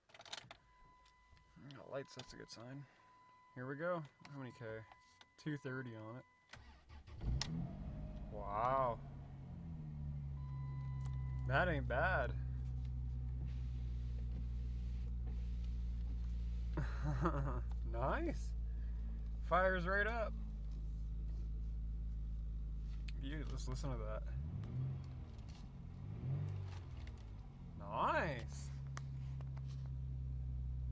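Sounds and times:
car engine idling: 6.6 - 30.9.

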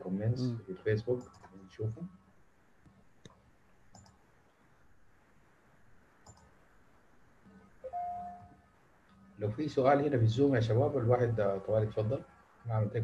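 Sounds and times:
computer mouse clicks: 1.2 - 1.6, 2.8 - 4.3, 6.2 - 6.6
single-pitched tone: 7.8 - 8.6.

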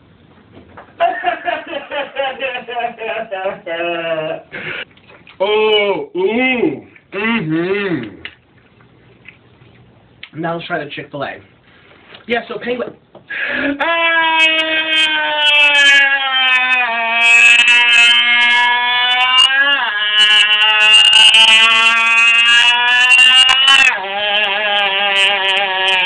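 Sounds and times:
person wailing a long note: 13.8 - 26.0.

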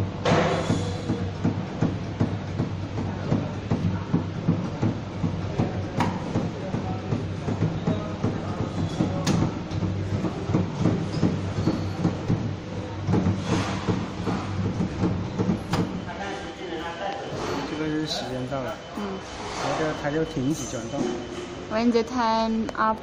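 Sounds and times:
low motor hum: 0.0 - 23.0.

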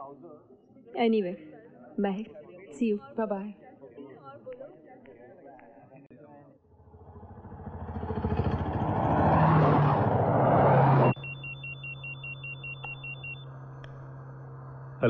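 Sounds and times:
vehicle engine approaching: 6.7 - 11.4, 13.3 - 15.0
low in-car hum: 6.7 - 15.0
mobile phone ringing trill: 11.1 - 13.5.

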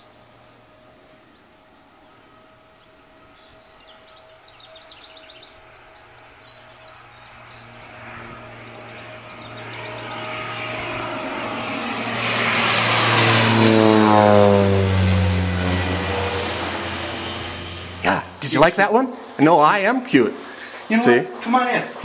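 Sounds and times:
propeller plane engine drone: 0.0 - 22.0.

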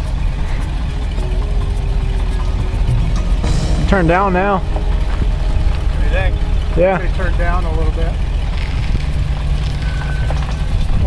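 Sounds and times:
truck engine running at low revs: 0.0 - 11.0.

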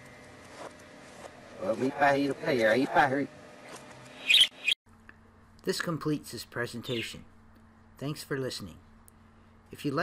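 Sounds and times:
budgerigar chirps: 4.2 - 4.8.

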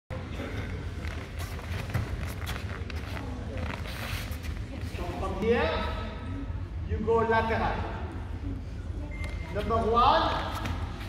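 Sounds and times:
steady low hum: 0.1 - 11.0.

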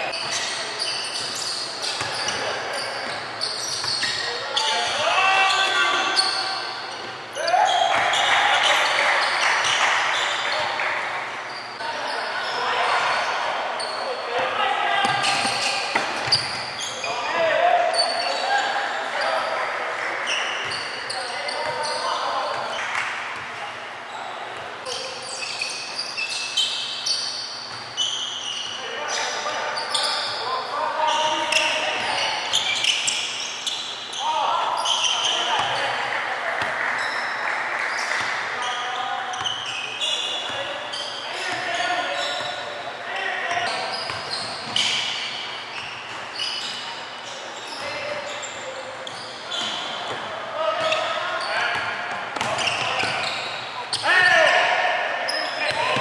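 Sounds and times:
shoe squeaks and knocks: 0.1 - 4.8, 15.1 - 17.2, 24.8 - 35.9, 43.6 - 50.2, 52.4 - 54.1.

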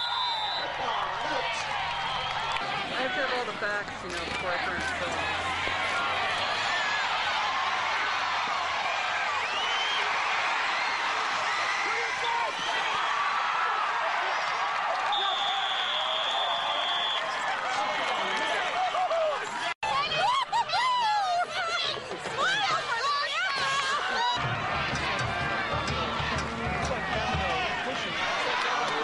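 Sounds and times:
crowd chatter: 0.0 - 12.8, 17.2 - 29.0.

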